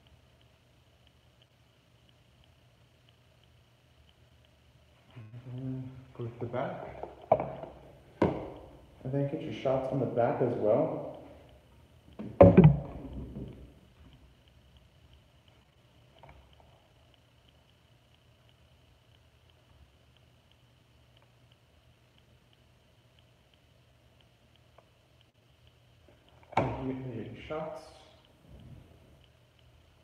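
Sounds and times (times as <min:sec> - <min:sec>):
faint steady hum: 0:00.0 - 0:30.0
knock on cardboard box: 0:12.4 - 0:13.4.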